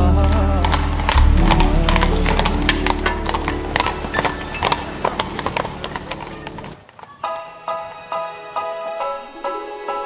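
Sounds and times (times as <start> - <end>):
horse hooves on cobblestones: 0.0 - 8.5.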